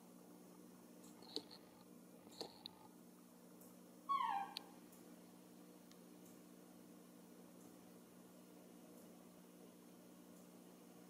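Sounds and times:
baby monkey crying: 4.1 - 4.8.

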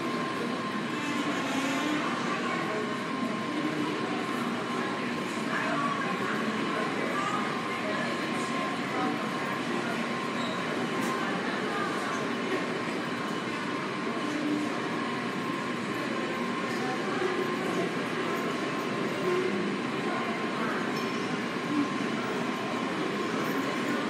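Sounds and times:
train rumbling in tunnel: 0.0 - 24.0.

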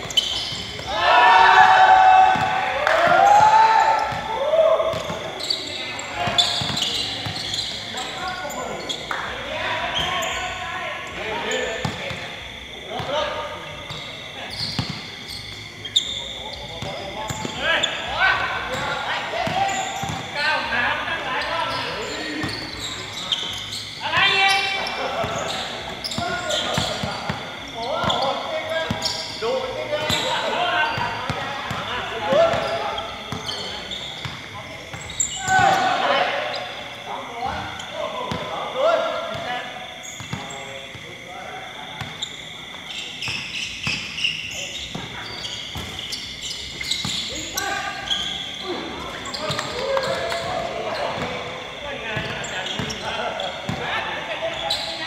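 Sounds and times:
players calling out and talking: 0.0 - 55.0.

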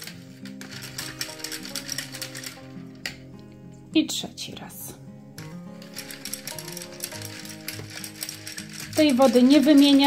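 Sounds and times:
metal stirrer rattling in cup: 0.0 - 3.2, 5.4 - 10.0.

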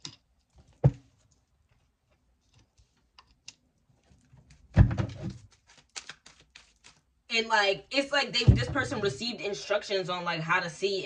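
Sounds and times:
cards handled on wooden desk: 5.3 - 7.0.

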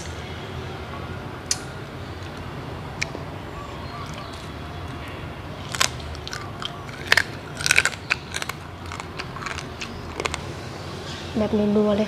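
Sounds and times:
chewing crunchy food: 3.9 - 10.7.

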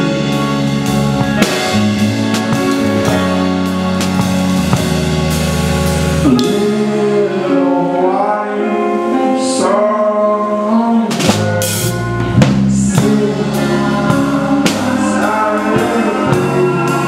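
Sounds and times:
rock band playing: 0.0 - 17.0
sustained keyboard and guitar notes: 0.0 - 17.0.

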